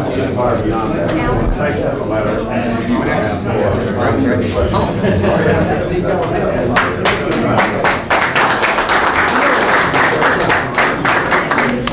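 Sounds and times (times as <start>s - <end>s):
voices among applause: 6.2s - 11.9s
crowd applauding: 6.6s - 11.9s.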